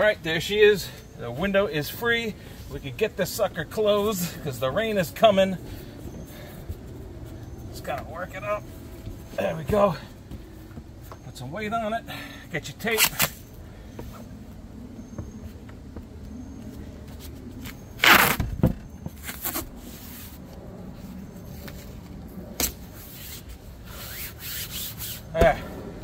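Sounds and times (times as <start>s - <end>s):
adhesive tape ripping off roll: 12.9s - 13.4s, 18.0s - 18.5s, 19.2s - 20.3s.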